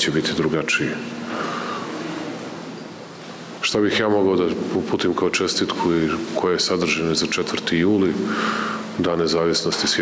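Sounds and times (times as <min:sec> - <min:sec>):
room background hiss and hum: 0:00.0 - 0:10.0.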